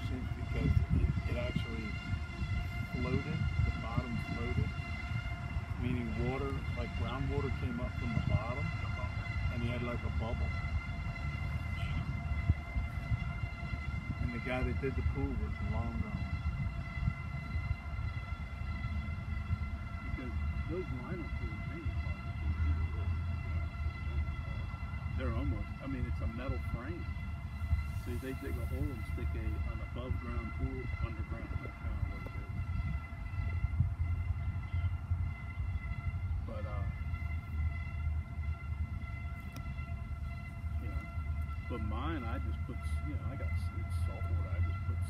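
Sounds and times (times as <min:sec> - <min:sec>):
freight train cars rumbling past: 0:00.0 - 0:45.0
high-pitched whine: 0:00.0 - 0:45.0.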